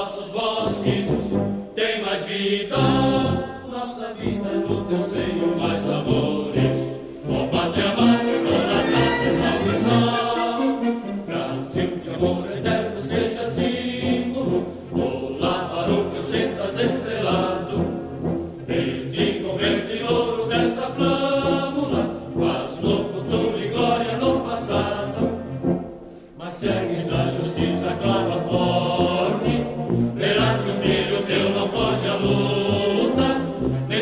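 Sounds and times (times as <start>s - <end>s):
many voices singing in unison: 0.0s - 34.0s
instrumental accompaniment: 3.2s - 20.6s.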